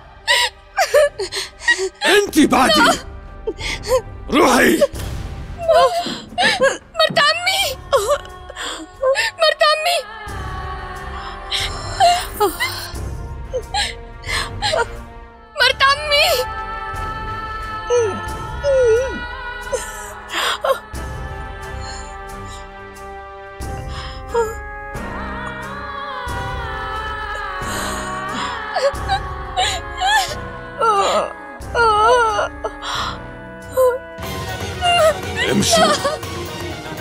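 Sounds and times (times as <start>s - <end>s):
background music: 0.0s - 37.0s
woman whimpering in pain: 0.3s - 5.0s, 5.6s - 9.7s, 11.5s - 13.0s, 27.7s - 34.1s, 34.8s - 36.2s.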